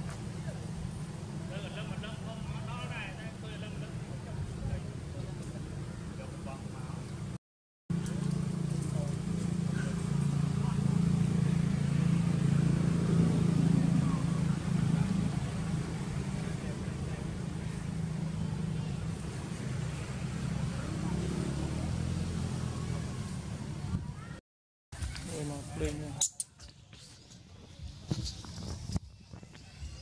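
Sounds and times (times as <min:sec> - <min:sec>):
vehicle engine humming: 0:00.0 - 0:24.4.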